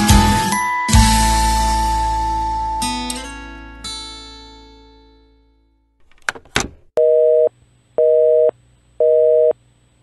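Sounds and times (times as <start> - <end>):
telephone busy signal: 7.0 - 9.6.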